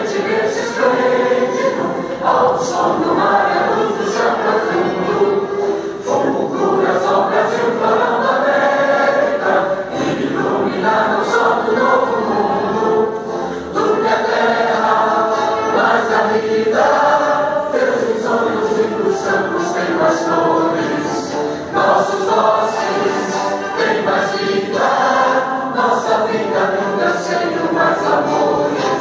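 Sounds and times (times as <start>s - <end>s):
choir singing an anthem: 0.0s - 29.0s.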